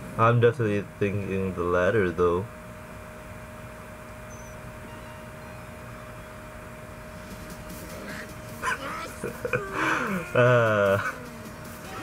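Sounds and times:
low steady hum: 0.0 - 12.0
man laughing: 8.0 - 11.4.

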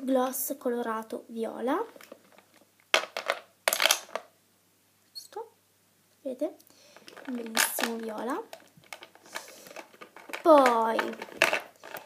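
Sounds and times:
plastic items clicking and clattering: 1.9 - 4.3, 6.9 - 12.0.

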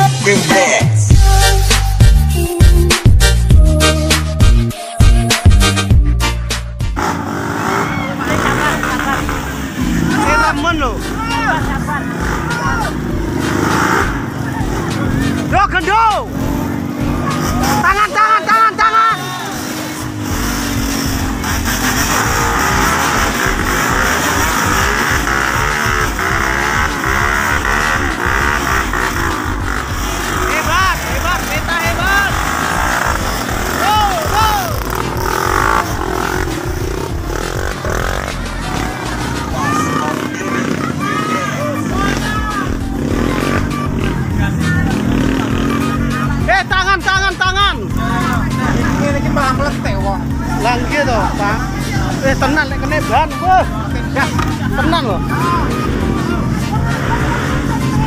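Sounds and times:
dirt bike engines revving: 6.9 - 58.0
people shouting: 7.4 - 58.0.

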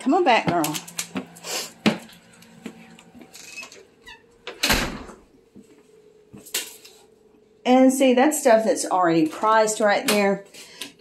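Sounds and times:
door squeaking: 3.4 - 5.2
door closing thud: 4.5 - 5.2.

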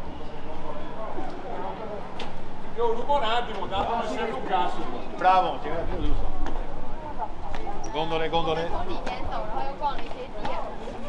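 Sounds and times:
people talking: 2.8 - 11.0.

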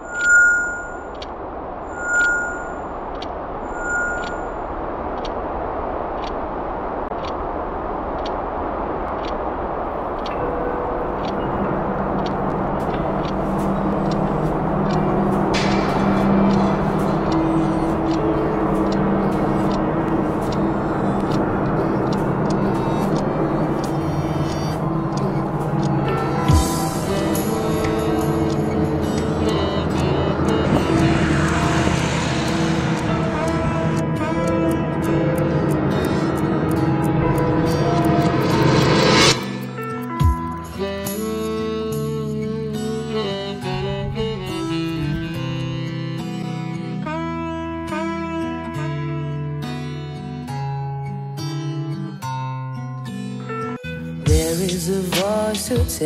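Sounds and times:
short high tones: 0.0 - 1.2, 1.9 - 3.0, 3.6 - 4.6
soundtrack drone: 0.0 - 48.5
low held notes: 0.0 - 48.6
wall clock ticking: 0.1 - 1.3, 2.0 - 4.4, 9.1 - 34.1.

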